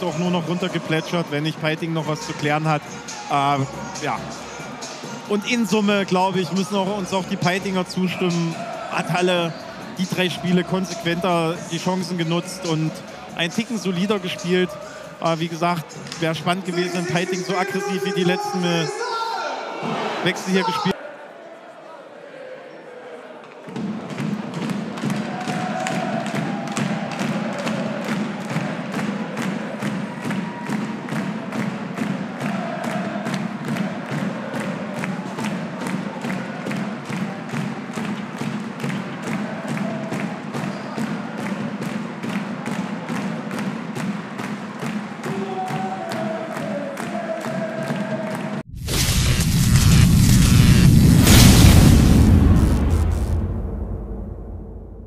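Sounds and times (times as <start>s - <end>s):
crowd chanting: 7.2s - 11.3s, 19.3s - 30.2s, 32.1s - 37.4s, 45.3s - 48.6s
loud booming sound effect: 48.7s - 55.0s.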